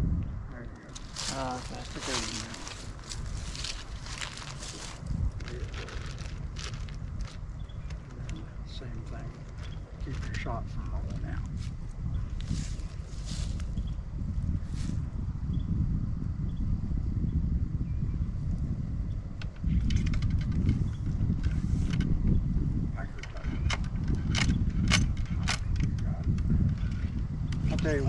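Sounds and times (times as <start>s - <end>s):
wind rumbling on microphone: 0.0s - 28.0s.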